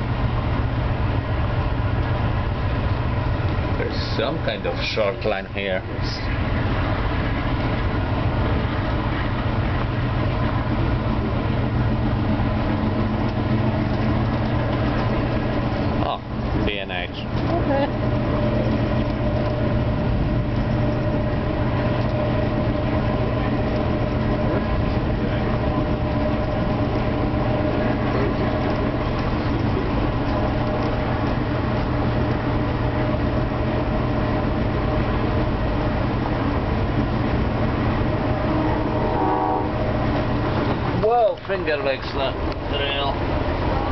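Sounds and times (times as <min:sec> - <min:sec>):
train rumbling inside coach: 0:00.0 - 0:43.9.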